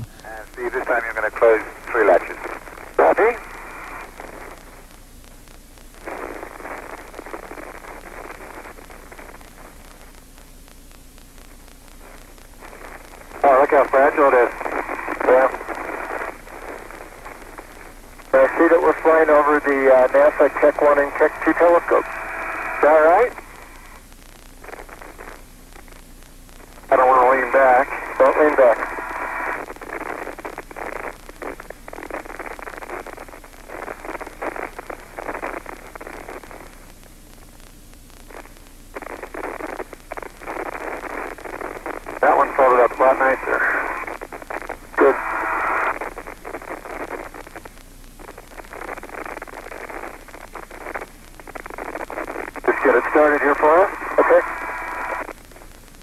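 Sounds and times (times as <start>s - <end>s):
radio voices: 0.0s - 4.6s, 12.6s - 23.8s, 26.9s - 30.3s, 39.0s - 47.3s, 52.2s - 55.3s
radio hiss: 0.0s - 56.0s.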